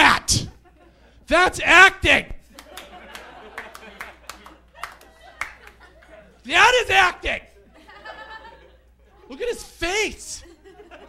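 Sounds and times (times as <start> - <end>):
audience handclaps: 2.5 - 6.0.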